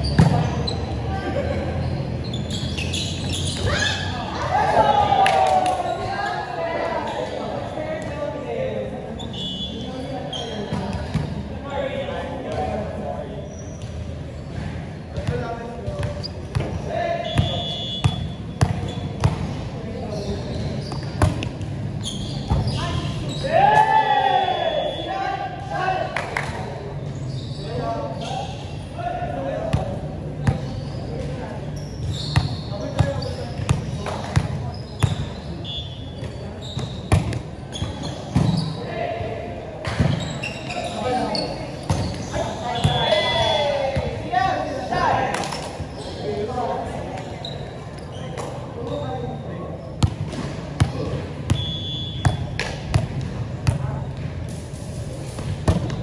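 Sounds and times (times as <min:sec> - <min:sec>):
players chatting: 0:00.0 - 0:52.2
short high squeaks: 0:01.8 - 0:04.1, 0:22.0 - 0:23.5, 0:27.1 - 0:29.0, 0:31.7 - 0:33.4, 0:34.7 - 0:37.1, 0:40.1 - 0:43.4.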